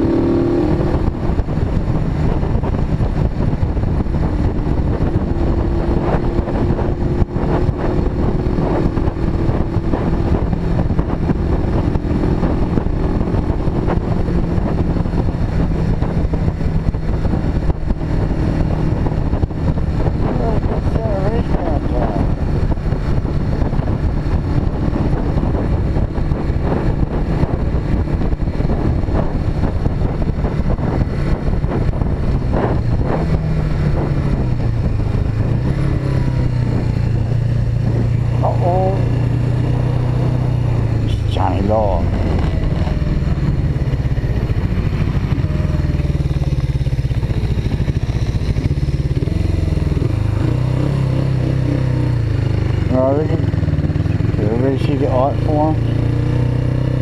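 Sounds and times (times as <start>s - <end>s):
motorcycle engine running: 0.0s - 57.0s
wind noise on microphone: 0.0s - 57.0s.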